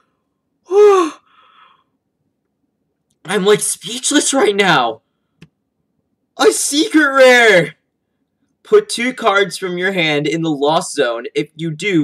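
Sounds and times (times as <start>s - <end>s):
man sighing in amazement: 0.7s - 1.8s.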